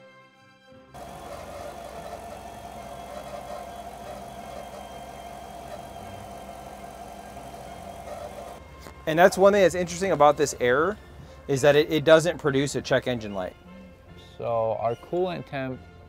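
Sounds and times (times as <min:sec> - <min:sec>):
background music: 0:00.0 - 0:16.0
engine idling: 0:01.0 - 0:08.6.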